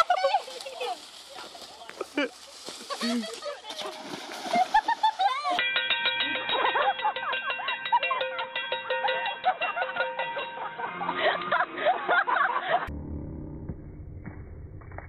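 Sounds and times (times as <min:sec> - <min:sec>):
metal pot banging: 0:05.6 - 0:11.0
steady ringing tone: 0:05.6 - 0:11.2.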